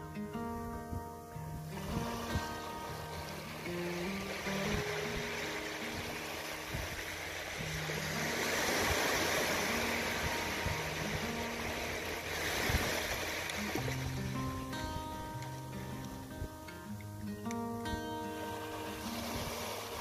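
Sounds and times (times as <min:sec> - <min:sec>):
acoustic guitar music: 0:00.0 - 0:20.0
small waves washing on beach: 0:01.5 - 0:17.0, 0:18.2 - 0:20.0.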